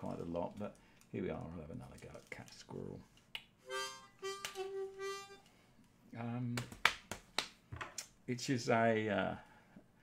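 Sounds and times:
harmonica playing: 0:03.6 - 0:05.6.

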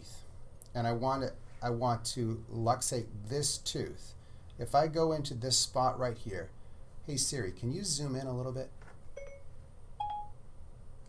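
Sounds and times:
voice assistant beeps: 0:10.0 - 0:10.3.

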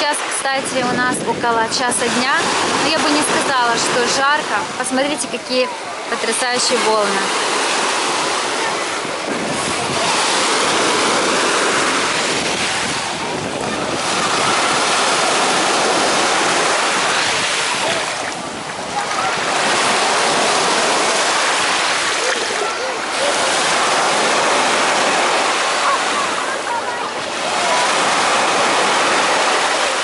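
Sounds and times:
sea surf breaking on shore: 0:00.0 - 0:30.0.

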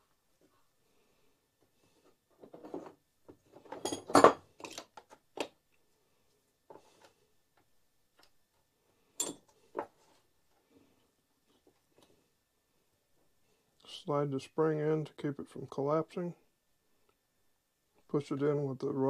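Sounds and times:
small metal tools clinking: 0:09.2 - 0:09.5.

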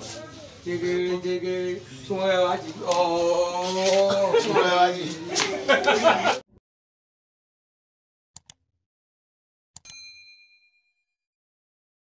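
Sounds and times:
notification bell ding: 0:09.8 - 0:11.2.

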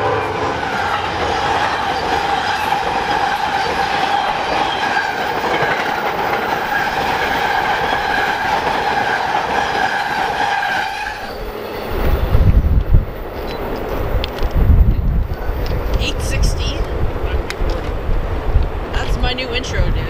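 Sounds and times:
train wheels rushing on rail: 0:00.0 - 0:20.0.

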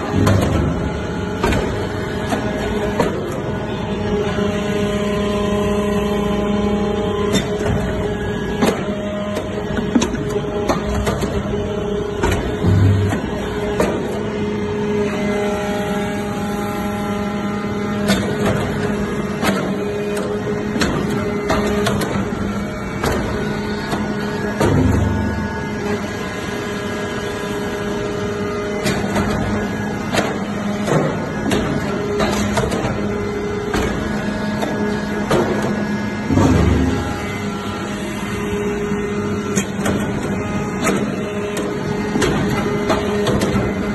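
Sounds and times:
hydraulic pump hum: 0:00.0 - 0:43.9.

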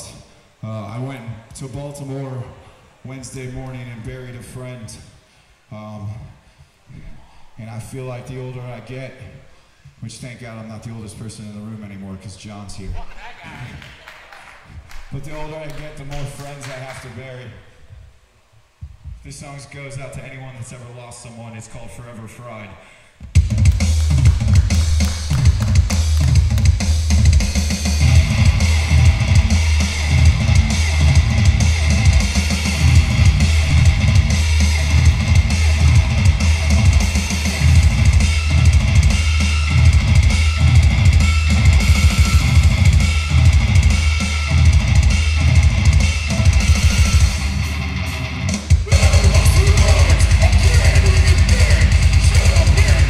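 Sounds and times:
loud drum kit: 0:23.3 - 0:53.0
live hardcore band playing: 0:23.4 - 0:53.0.

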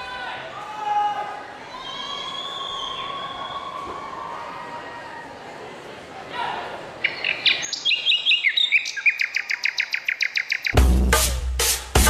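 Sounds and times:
birdsong chirps and trill: 0:07.0 - 0:10.8
heavy bass drum beat: 0:10.8 - 0:12.0.

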